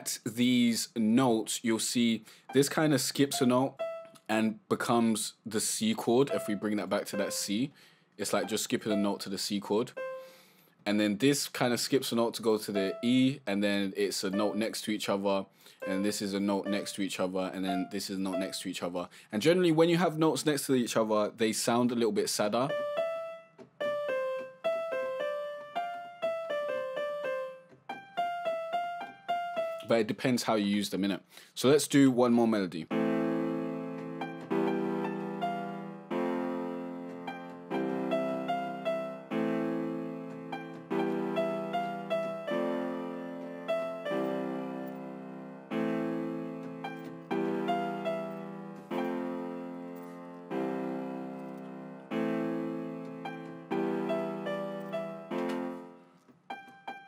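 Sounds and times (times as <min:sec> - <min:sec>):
plucked keyboard-like melody: 0:02.5 - 0:04.6, 0:06.0 - 0:07.6, 0:08.2 - 0:10.3, 0:12.5 - 0:13.4, 0:14.3 - 0:15.0, 0:15.8 - 0:18.8, 0:22.7 - 0:29.9, 0:32.9 - 0:57.0.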